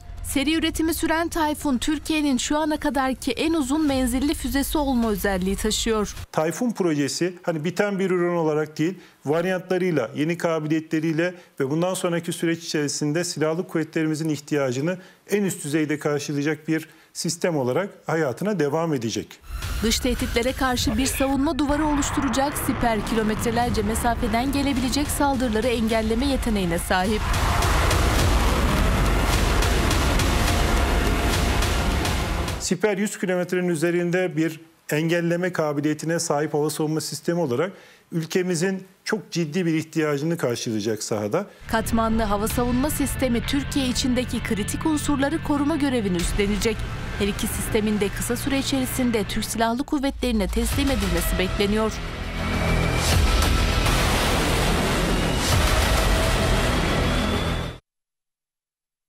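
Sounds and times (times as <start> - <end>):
rocket motor roaring: 20.9 - 26.2, 26.8 - 32.6.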